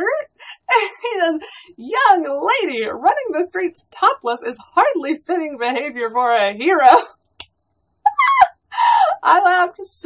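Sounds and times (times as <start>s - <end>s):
woman laughing: 0.4s - 1.6s, 8.0s - 9.2s.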